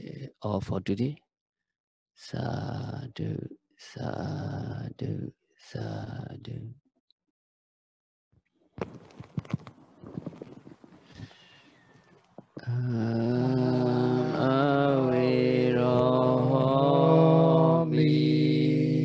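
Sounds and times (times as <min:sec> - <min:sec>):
man chanting: 0:00.0 - 0:00.8, 0:02.2 - 0:06.8, 0:12.6 - 0:19.0
soft clicks and rustling: 0:08.8 - 0:11.2, 0:11.8 - 0:12.6.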